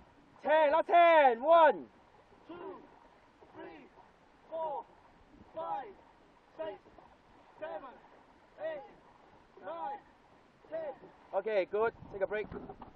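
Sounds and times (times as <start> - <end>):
faint water: 0.0 - 12.9
man calling out counts: 0.4 - 2.9, 3.5 - 3.9, 4.5 - 4.9, 5.5 - 6.9, 7.6 - 8.0, 8.6 - 9.0, 9.6 - 11.8
wind noise: 11.8 - 12.9.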